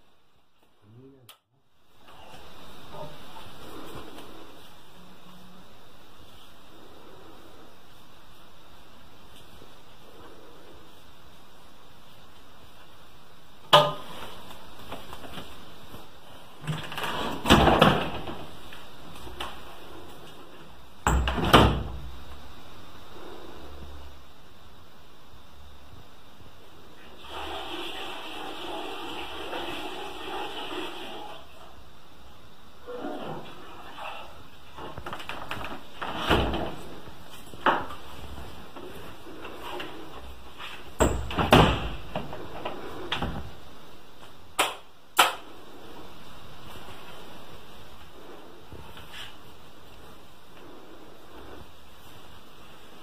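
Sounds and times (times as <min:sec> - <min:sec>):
steady background hiss: 0:00.0 - 0:53.0.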